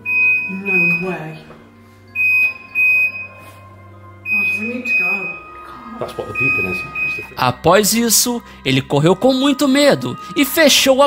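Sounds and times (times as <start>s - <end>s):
high-pitched alarm beeping: 0.0s - 1.5s, 2.1s - 3.6s, 4.2s - 5.6s, 6.2s - 7.5s.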